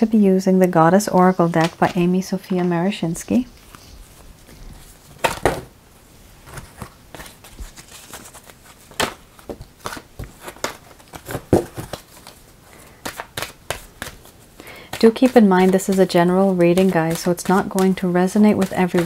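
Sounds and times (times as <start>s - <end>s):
cards being shuffled: 6.4s - 19.0s.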